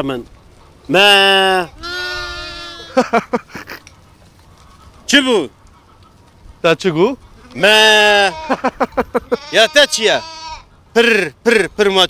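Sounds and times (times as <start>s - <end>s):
lamb bleating: 1.0s - 3.0s, 7.4s - 10.7s.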